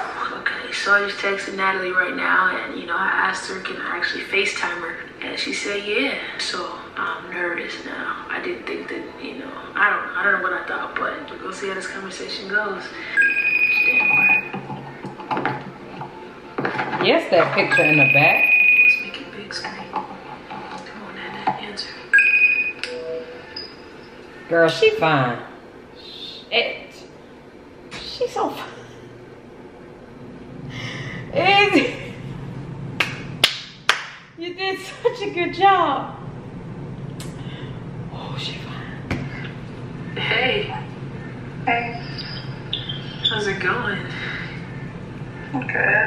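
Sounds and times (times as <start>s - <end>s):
woman's voice: 0.0s - 14.5s, 16.9s - 20.0s, 26.0s - 27.1s, 27.9s - 29.0s, 31.2s - 32.2s, 34.4s - 36.2s, 38.1s - 39.0s, 40.1s - 40.9s, 41.6s - 44.6s, 45.5s - 46.0s
call ringing tones: 13.1s - 14.5s, 17.6s - 19.1s, 22.1s - 24.1s
hand claps: 33.0s - 34.3s.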